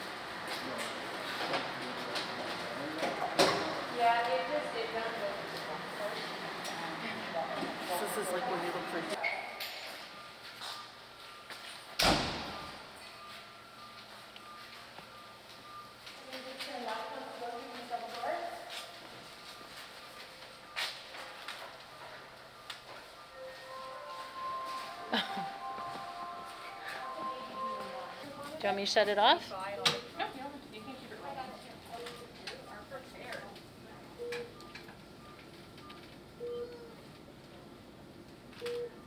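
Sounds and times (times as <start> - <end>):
faint voices: 0.5 - 9.3.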